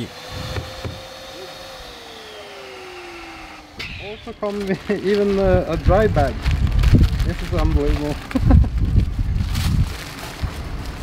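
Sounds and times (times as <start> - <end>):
electric inflator pump humming: 0.0 - 5.4.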